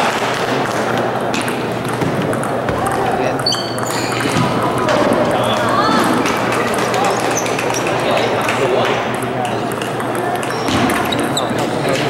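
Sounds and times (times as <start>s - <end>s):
ball struck by paddles: 0.0s - 12.0s
murmur of spectators: 0.0s - 12.0s
ball bouncing on table: 0.6s - 5.2s, 7.5s - 12.0s.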